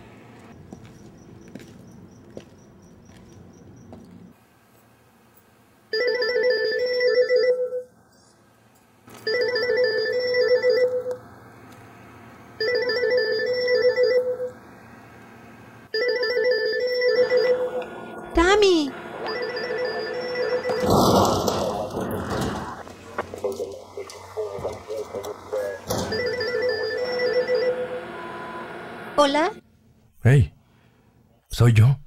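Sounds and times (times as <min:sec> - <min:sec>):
phone ringtone melody: 0:05.9 - 0:07.9, 0:09.2 - 0:11.1, 0:12.6 - 0:14.5, 0:15.9 - 0:17.8, 0:19.2 - 0:20.9, 0:26.1 - 0:28.4.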